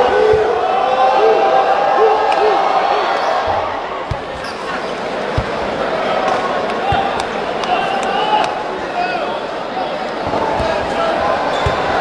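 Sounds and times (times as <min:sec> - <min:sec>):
basketball dribble thumps: 0:00.0 - 0:00.6, 0:03.5 - 0:04.5, 0:05.3 - 0:05.8, 0:06.8 - 0:07.4, 0:10.2 - 0:12.0
crowd murmur: 0:00.0 - 0:12.0.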